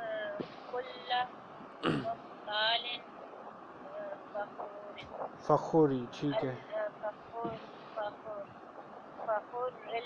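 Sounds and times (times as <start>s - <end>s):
person clearing throat: 1.8s - 2.2s.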